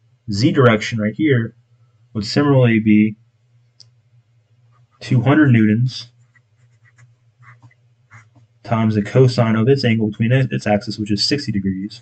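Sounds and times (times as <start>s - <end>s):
steady low hum: 0.0s - 12.0s
pencil writing on paper: 6.2s - 8.4s.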